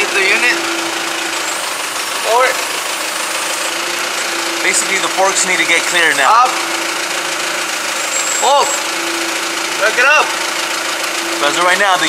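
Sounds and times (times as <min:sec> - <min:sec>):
forklift engine idling: 0:00.0 - 0:12.0.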